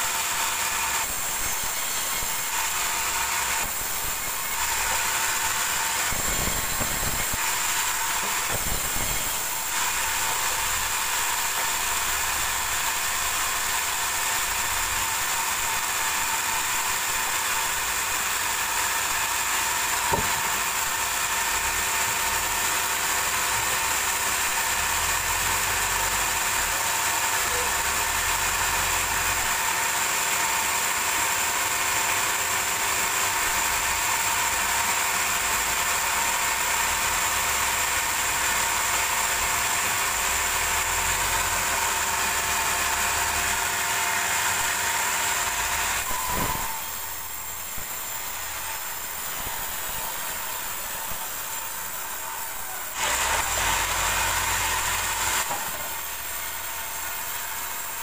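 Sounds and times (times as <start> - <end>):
band sawmill whine and hum: 0.0 - 26.8, 38.4 - 58.0.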